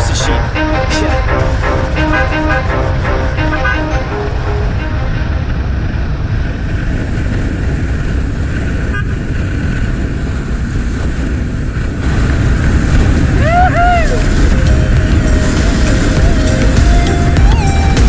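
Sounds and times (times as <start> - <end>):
background music: 0.0 - 5.9, 13.1 - 18.0
wind rushing over microphone: 0.0 - 18.0.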